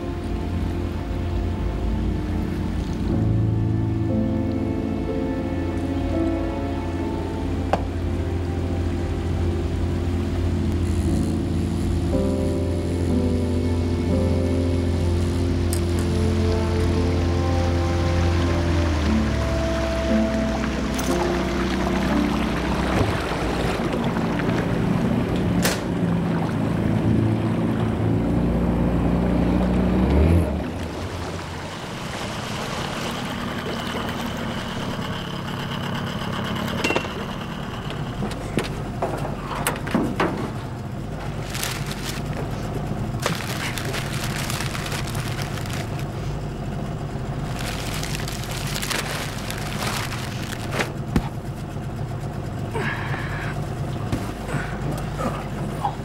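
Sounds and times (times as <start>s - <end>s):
low sustained film music: 0.0s - 56.0s
vehicle engine running: 0.0s - 56.0s.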